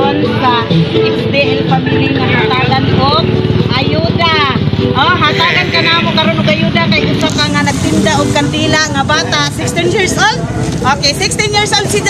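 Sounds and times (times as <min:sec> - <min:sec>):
vehicle engine running: 0:00.0 - 0:12.0
women talking and exclaiming: 0:00.0 - 0:12.0.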